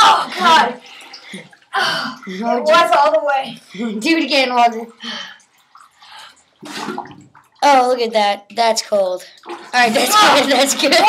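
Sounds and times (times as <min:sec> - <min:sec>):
water splashing in plastic bucket: 0:04.3 - 0:11.0.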